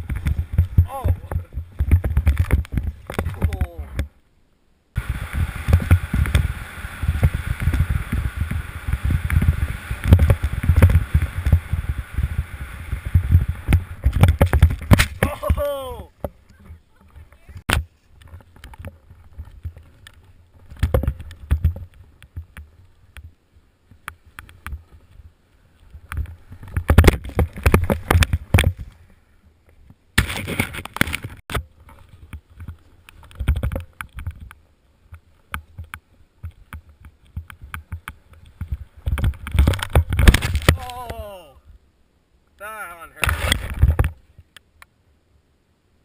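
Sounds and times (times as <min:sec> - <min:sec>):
person yelling: 0:00.8 - 0:01.3, 0:15.2 - 0:16.2, 0:40.8 - 0:41.6
snowboard scraping over snow: 0:05.0 - 0:16.1.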